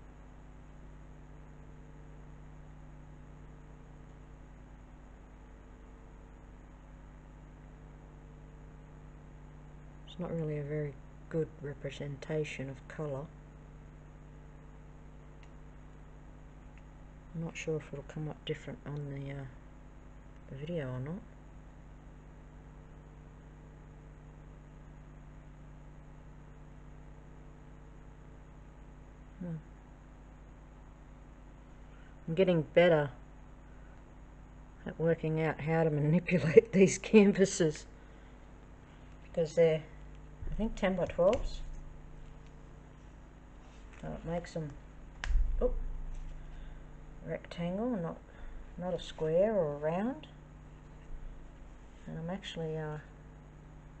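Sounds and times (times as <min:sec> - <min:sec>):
steady low hum: 0:00.0 - 0:54.0
low hum: 0:37.0 - 0:52.8.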